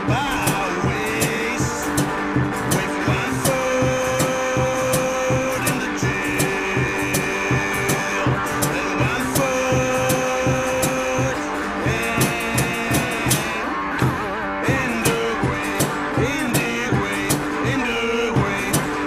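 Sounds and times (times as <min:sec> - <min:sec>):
held lead notes: 0:00.0 - 0:19.0
steady drum beat: 0:00.0 - 0:19.0.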